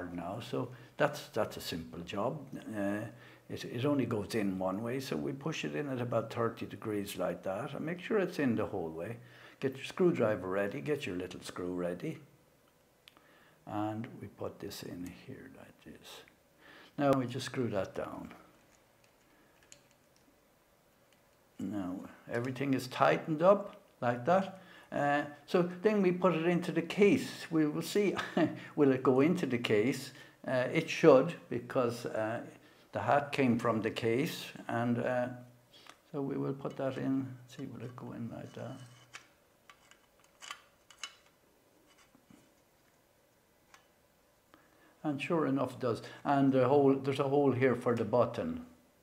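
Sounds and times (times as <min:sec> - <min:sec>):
faint ticks of screw turning: 0:18.7 - 0:20.3
light scraping: 0:35.8 - 0:42.9.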